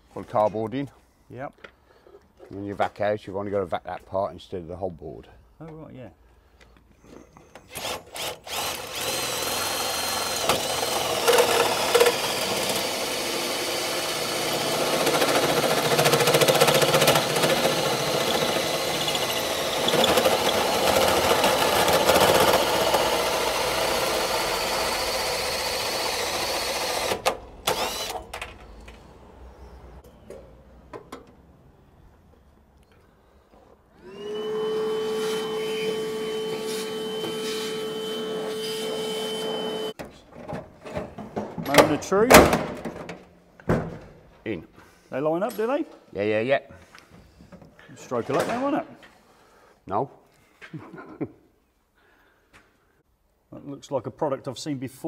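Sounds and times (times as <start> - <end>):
drill hole saw cutting steel: 7.7 - 28.2, 34.0 - 40.0
vacuum cleaner humming: 34.0 - 40.0.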